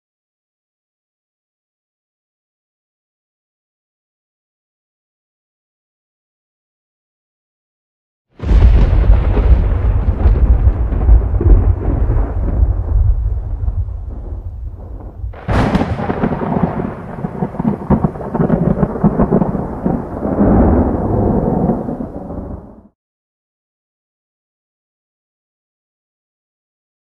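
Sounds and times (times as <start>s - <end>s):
thunder crack: 8.4s - 22.9s
thunder rumbling: 8.4s - 22.9s.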